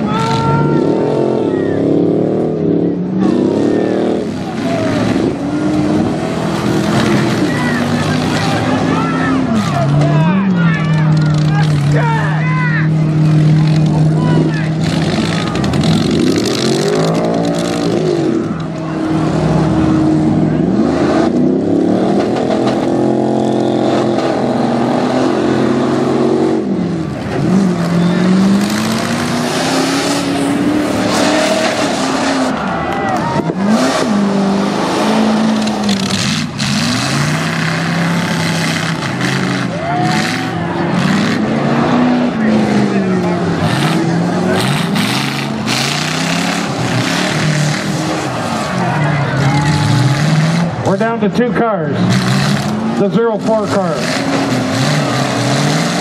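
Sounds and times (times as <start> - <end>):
car engines revving hard: 0.0 - 56.0.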